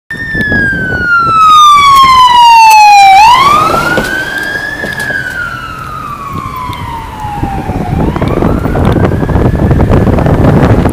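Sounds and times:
electronic siren wailing: 0.1s - 10.4s
wind buffeting microphone: 0.1s - 10.9s.

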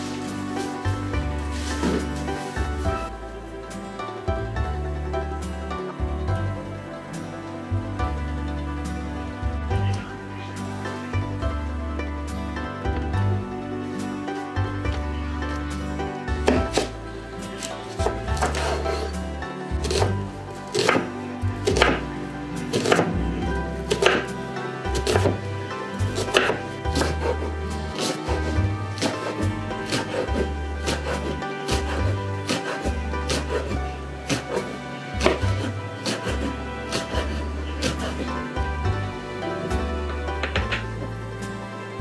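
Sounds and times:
background music with bass line: 0.0s - 42.0s
knife chopping on wooden board: 18.0s - 19.1s, 19.8s - 22.0s, 22.7s - 23.2s, 23.9s - 24.3s, 25.0s - 25.4s, 26.2s - 38.3s.

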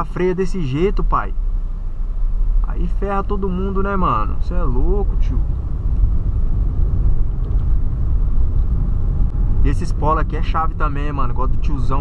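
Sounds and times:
car interior road and engine rumble: 0.0s - 12.0s.

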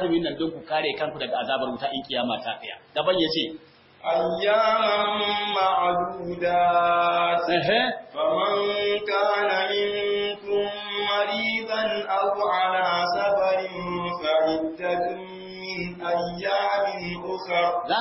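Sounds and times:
man chanting melodically: 0.0s - 18.0s.

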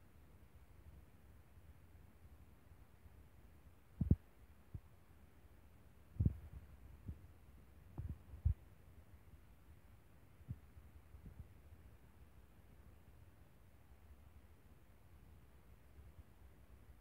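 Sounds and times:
faint low hum: 0.0s - 17.0s
dull low thumps: 4.0s - 4.2s.

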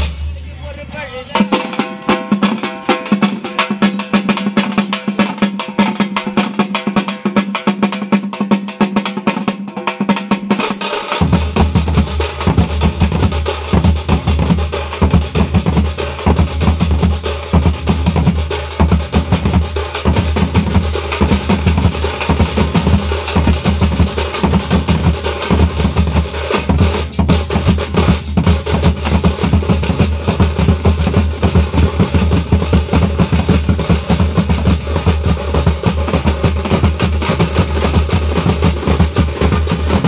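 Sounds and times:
frame drums beating fast: 0.0s - 40.0s.

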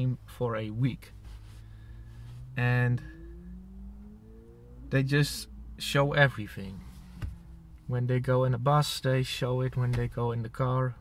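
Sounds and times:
car engine hum: 0.0s - 11.0s
faint rising tones: 1.0s - 8.3s.

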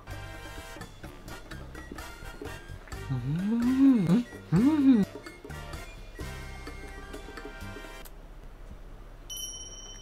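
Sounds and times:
low steady hum: 0.0s - 10.0s
bell-like ding: 9.3s - 10.0s.

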